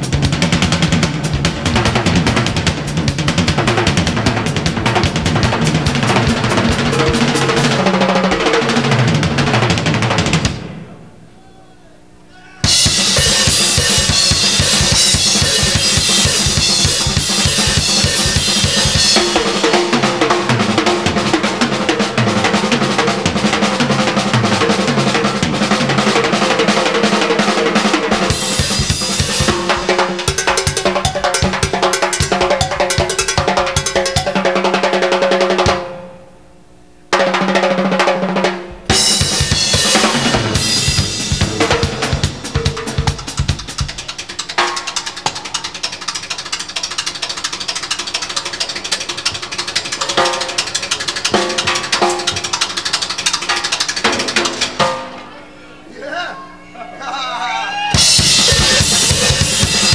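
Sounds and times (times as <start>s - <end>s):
drum kit played fast: 0.0s - 10.8s, 12.6s - 36.0s, 37.1s - 55.2s, 57.9s - 59.9s.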